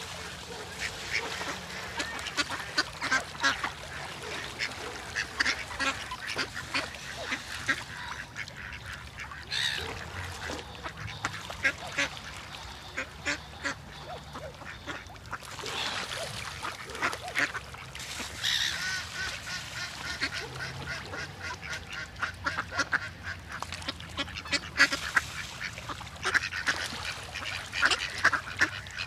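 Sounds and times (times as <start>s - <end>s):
ducks quacking: 0.0s - 29.0s.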